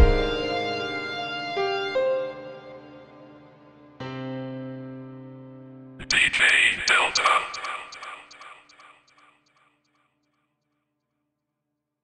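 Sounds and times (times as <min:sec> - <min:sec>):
spoken tag with echo: 0:06.0 - 0:09.1.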